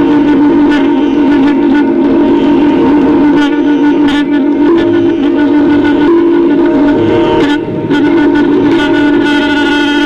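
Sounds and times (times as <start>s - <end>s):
clarinet holding long note: 0.0s - 10.0s
sustained harmonium: 0.0s - 10.0s.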